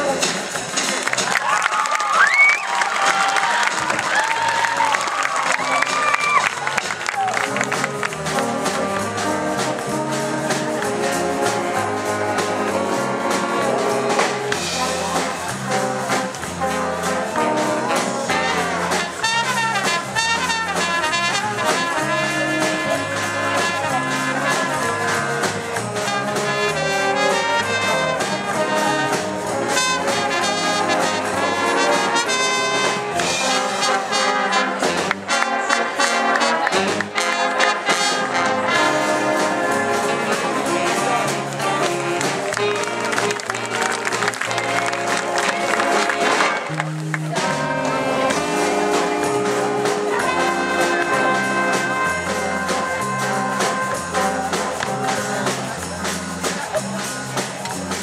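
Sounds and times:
jazz band playing: 0.0s - 58.0s.

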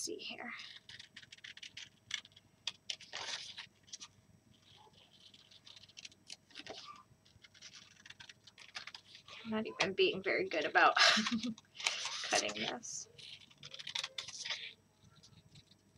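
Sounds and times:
scissors snipping paper: 0.6s - 9.4s, 11.2s - 15.9s
paper rustling: 0.6s - 9.5s, 10.2s - 15.9s.

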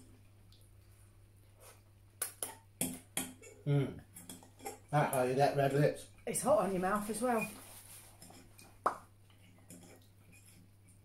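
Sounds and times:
person humming mm: 3.6s - 4.0s.

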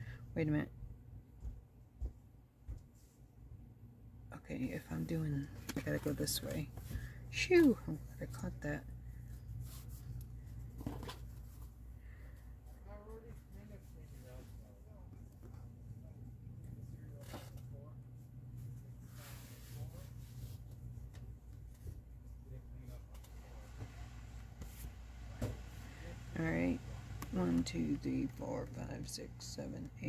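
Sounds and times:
steady low hum: 0.0s - 30.0s
fabric being smoothed and folded: 9.6s - 10.2s, 19.0s - 20.7s.

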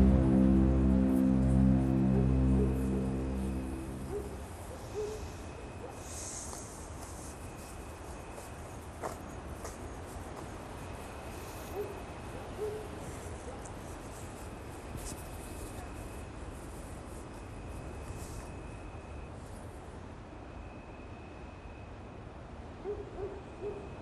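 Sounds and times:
music: 0.0s - 4.4s
background hiss: 0.0s - 9.5s.

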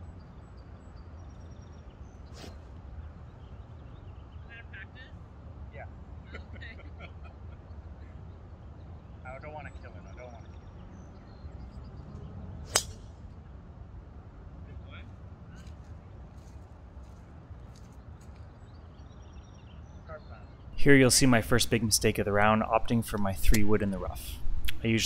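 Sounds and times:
golf club striking ball: 12.7s - 13.0s.

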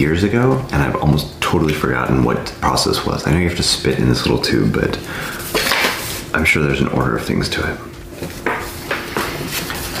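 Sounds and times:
paper rustling and crinkling: 8.3s - 10.0s.

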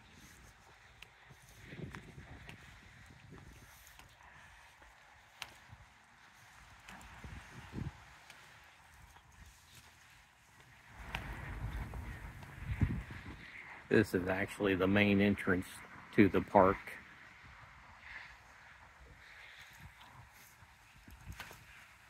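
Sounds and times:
footsteps on pavement: 0.0s - 13.5s
low rumble: 10.8s - 13.9s.

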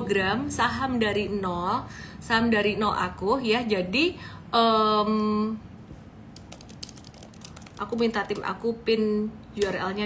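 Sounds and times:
keyboard typing clicks: 6.4s - 8.5s.

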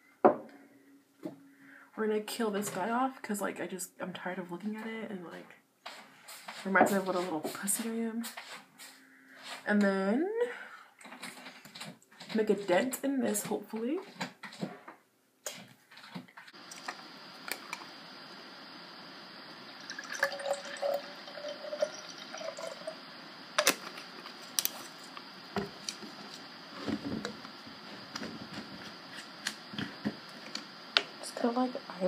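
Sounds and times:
liquid pouring into glass: 19.7s - 23.8s.

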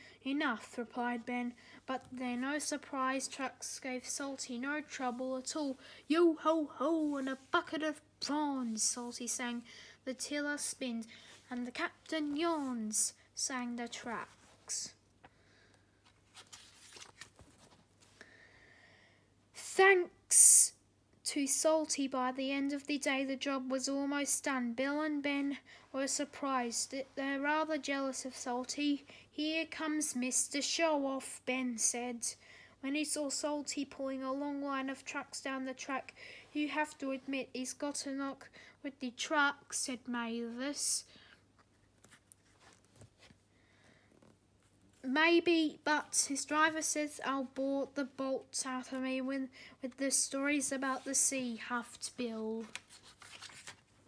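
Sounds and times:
paper page turning: 16.0s - 18.1s, 41.6s - 43.4s, 52.6s - 54.0s.

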